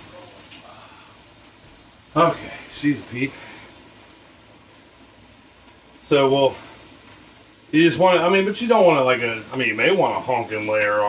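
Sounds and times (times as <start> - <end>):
pressure canner venting steam: 0.0 - 11.0.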